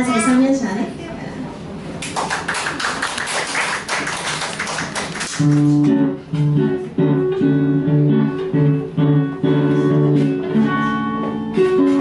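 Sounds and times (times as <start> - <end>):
audience clapping: 2.0 - 6.0.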